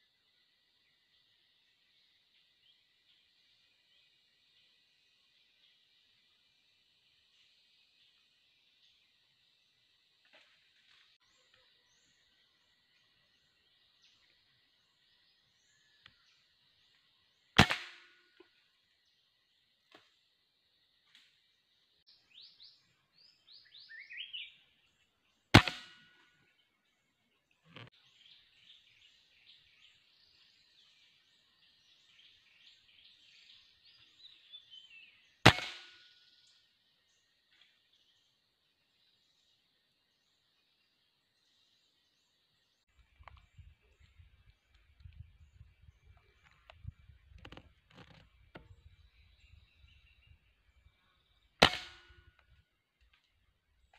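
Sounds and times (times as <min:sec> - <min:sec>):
birds chirping: 0:18.4 - 0:53.9.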